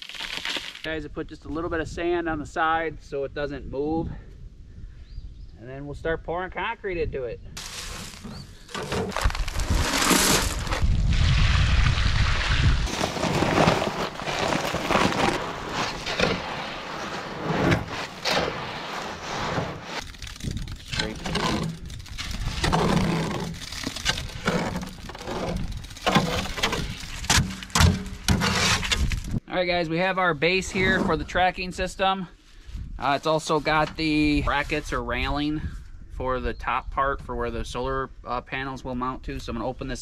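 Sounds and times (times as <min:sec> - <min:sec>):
concrete scraping in metal wheelbarrow: 0:07.6 - 0:10.9, 0:12.5 - 0:29.4, 0:30.6 - 0:31.4.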